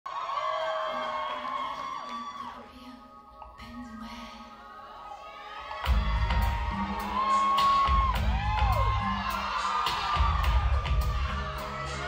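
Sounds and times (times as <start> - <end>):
audience cheering and screaming: 0.1 - 3.0, 4.9 - 12.0.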